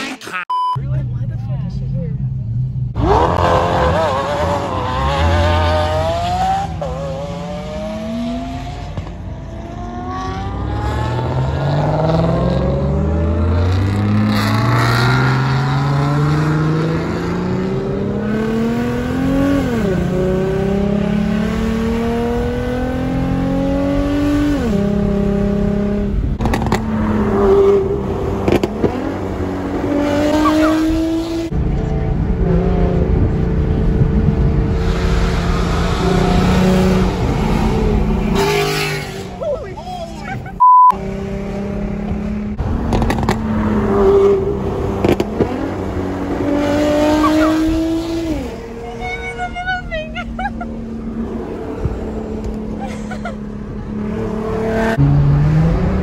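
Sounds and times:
car engine accelerating hard: 0:02.9 - 0:39.4, 0:40.9 - 0:49.1, 0:50.3 - 0:56.0.

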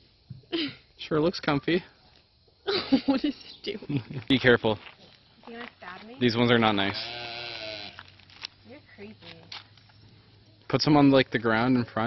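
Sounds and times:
goat bleating: 0:06.9 - 0:08.1.

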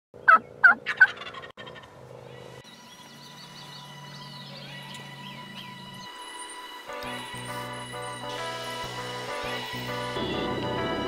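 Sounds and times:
turkey gobbling: 0:00.2 - 0:02.0
small birds chirping: 0:00.2 - 0:07.5.

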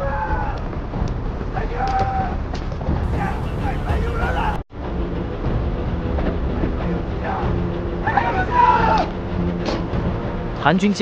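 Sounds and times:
boat engines rumbling: 0:02.3 - 0:10.9
men talking: 0:03.0 - 0:04.6, 0:10.6 - 0:11.0
man shouting: 0:03.1 - 0:04.6, 0:08.0 - 0:09.1.

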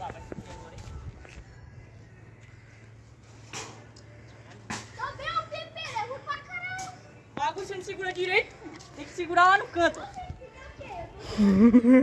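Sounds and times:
boys talking: 0:04.8 - 0:11.4
boys laughing: 0:11.2 - 0:12.0.

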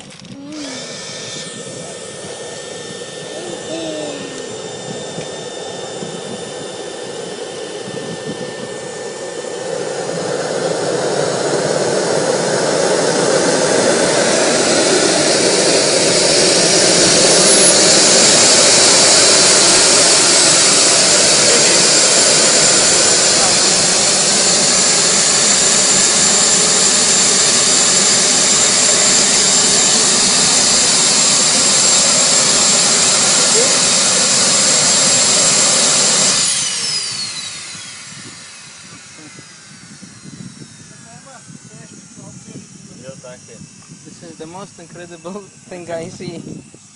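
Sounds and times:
hairdryer blowing: 0:00.0 - 0:46.9
jet turbine whining: 0:00.0 - 0:46.9.

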